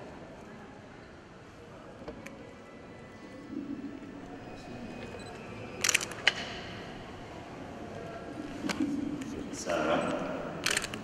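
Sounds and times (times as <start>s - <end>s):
camera shutter clicks: 10.6s - 11.0s.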